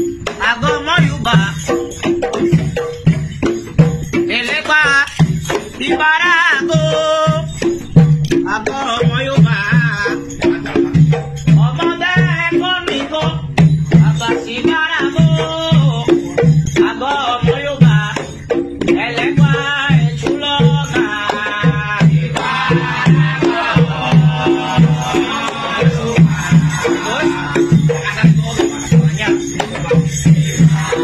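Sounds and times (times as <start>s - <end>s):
person singing: 19.0s - 31.0s
solo voice chanting: 20.6s - 28.7s.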